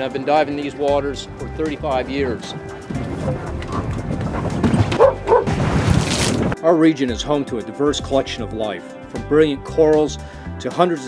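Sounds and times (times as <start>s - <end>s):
water splash: 2.9s - 6.6s
dog barking: 4.9s - 5.6s.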